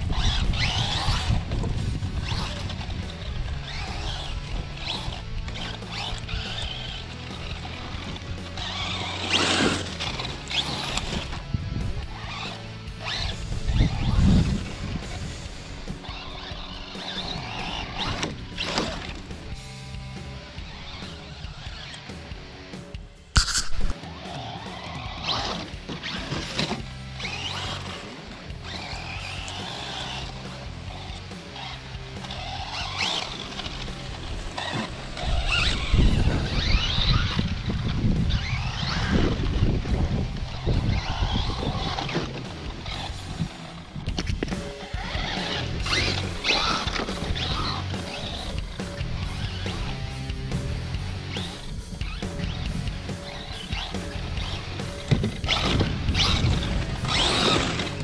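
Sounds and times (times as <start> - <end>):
rc truck electric motor whining: 0.0 - 22.6, 23.4 - 58.0
background music: 0.0 - 58.0
sharp knock: 23.4 - 24.0.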